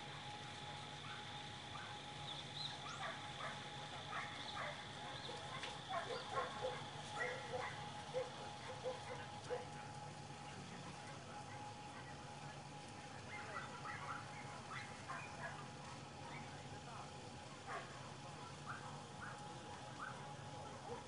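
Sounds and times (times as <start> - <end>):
dog barking: 1.0 - 2.0, 2.8 - 9.7, 13.3 - 15.7, 17.7 - 19.4, 20.0 - 21.0.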